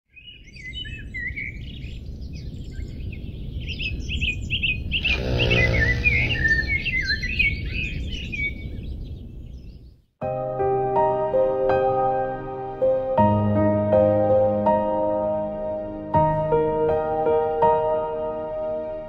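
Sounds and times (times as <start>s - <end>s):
songbirds chirping and trilling: 0.1s - 10.1s.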